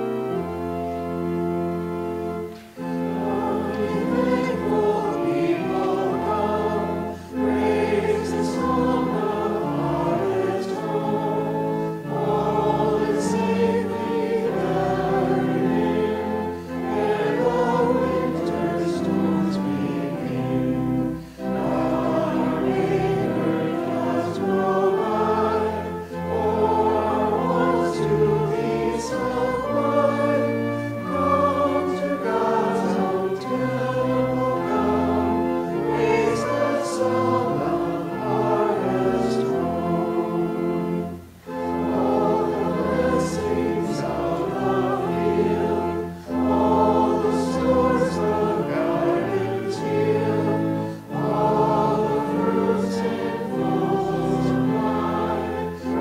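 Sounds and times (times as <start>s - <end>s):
pipe organ playing held chords: 0.0s - 56.0s.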